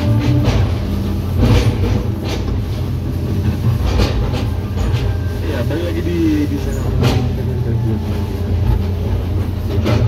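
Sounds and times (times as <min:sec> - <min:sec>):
diesel engine running under load: 0:00.0 - 0:10.0.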